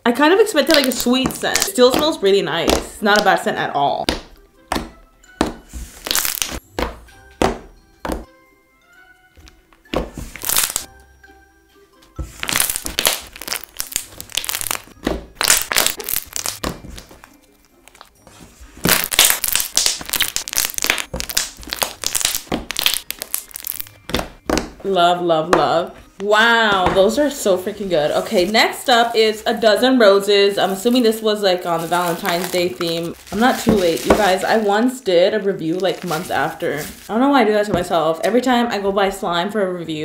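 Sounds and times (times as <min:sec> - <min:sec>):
soft background music: 0:00.0 - 0:40.0
slime clicking and popping: 0:12.5 - 0:16.6, 0:18.8 - 0:24.7.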